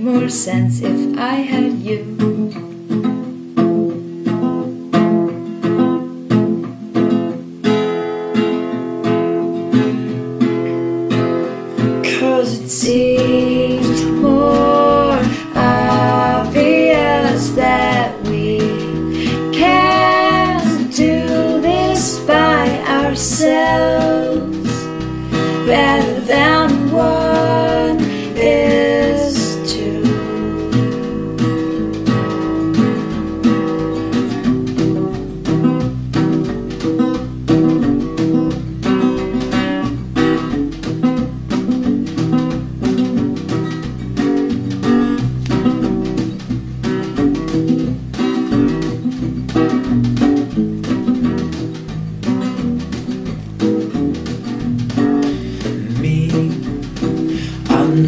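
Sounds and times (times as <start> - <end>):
strummed acoustic guitar: 0.0 - 58.0.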